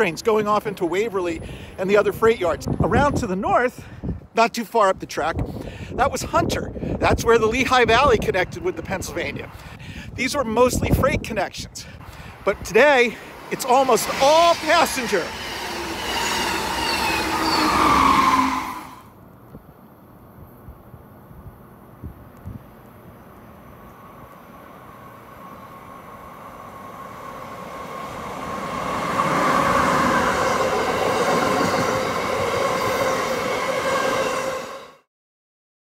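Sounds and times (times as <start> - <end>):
passenger train passing: 0.0 - 4.3, 10.6 - 19.2, 22.8 - 35.1
electric train rumble: 11.8 - 19.2, 20.4 - 35.1.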